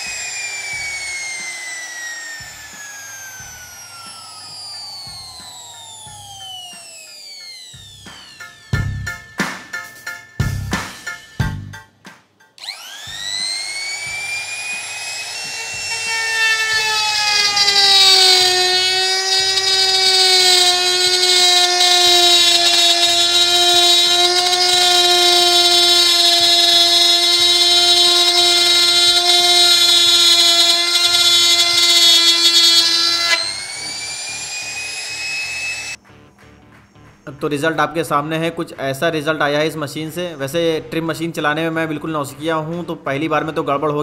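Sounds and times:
router cutting plywood: 0.0s - 9.0s, 12.6s - 36.0s
router motor whining: 0.0s - 9.4s, 12.6s - 36.0s.

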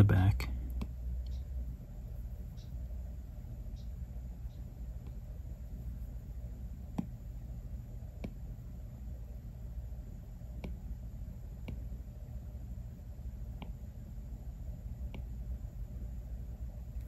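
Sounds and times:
low steady hum: 0.0s - 17.0s
stylus tapping on glass screen: 0.7s - 1.5s, 6.9s - 7.2s, 8.1s - 8.5s, 10.5s - 10.8s, 11.6s - 11.9s.

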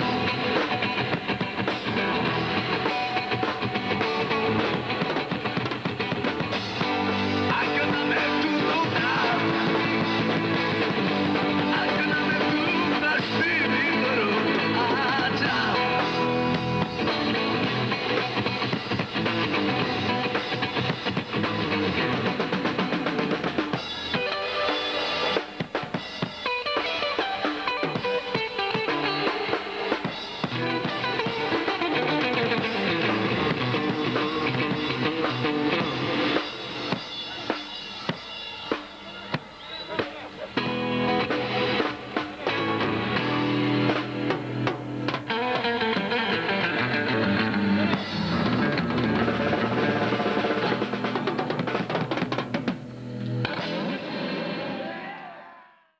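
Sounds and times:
drum kit: 0.0s - 55.5s
electric guitar: 0.0s - 55.6s.

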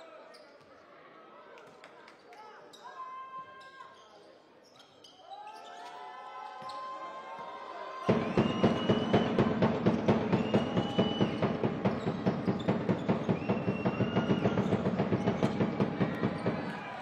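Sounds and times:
fast drum beat: 8.1s - 17.0s.

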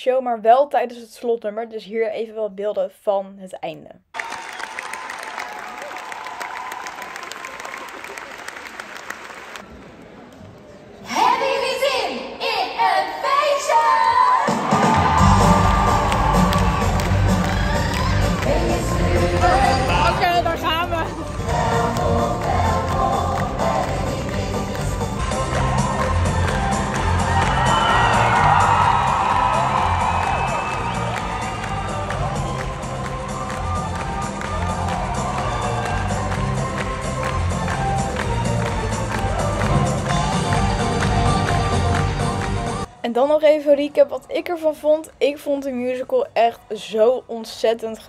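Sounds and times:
crowd cheering: 4.1s - 10.3s, 14.0s - 20.5s, 21.2s - 42.9s
amplified song with singing: 13.2s - 42.8s.

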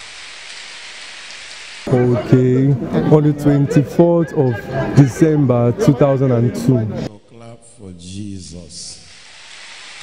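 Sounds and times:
man speaking: 1.9s - 9.2s.

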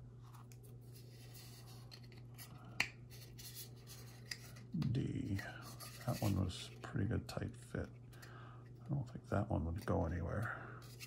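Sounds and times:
plastic parts rubbing: 3.2s - 6.7s.

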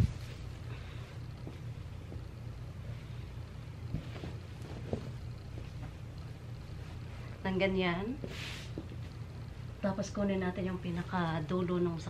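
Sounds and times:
steady low rumble: 0.0s - 8.2s
fabric rustling: 3.8s - 7.4s.

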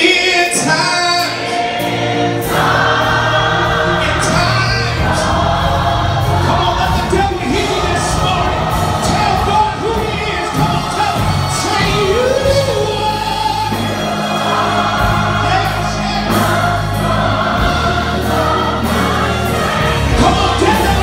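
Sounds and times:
choir singing in harmony: 0.0s - 21.0s
church band playing: 0.0s - 21.0s.

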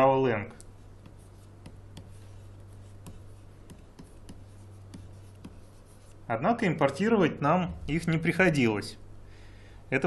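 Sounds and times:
low electrical hum: 0.0s - 10.0s
stylus scratching on tablet: 0.7s - 6.3s.

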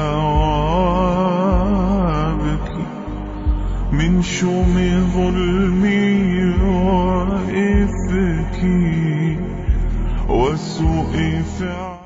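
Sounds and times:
low drone: 0.0s - 12.0s
solo voice singing melisma: 0.0s - 12.0s.

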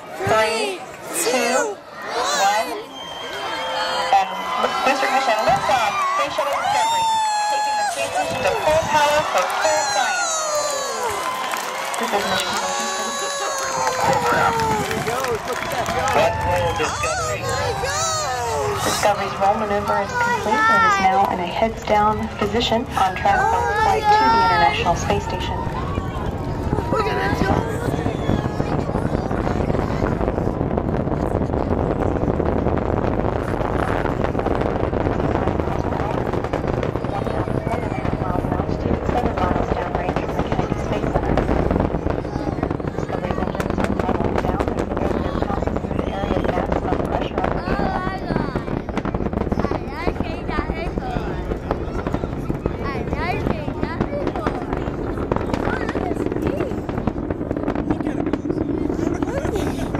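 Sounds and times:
distant rocket exhaust rumble: 4.4s - 59.9s.

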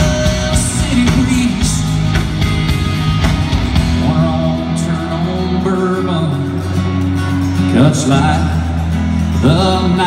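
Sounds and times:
acoustic guitar: 0.0s - 10.0s
bass notes: 0.0s - 10.0s
country-rock band playing: 0.0s - 10.0s
drums: 0.0s - 10.0s.

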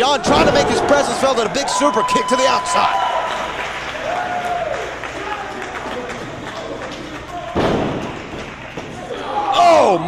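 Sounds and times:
heavy thud on wrestling ring: 7.6s - 8.3s.

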